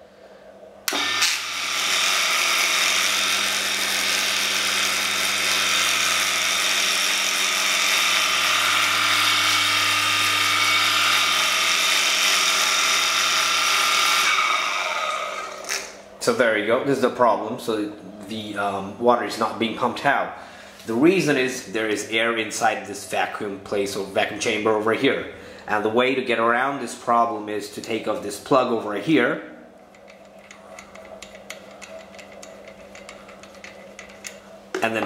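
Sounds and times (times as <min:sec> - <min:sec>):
electric water pump humming: 0:00.1 - 0:16.1.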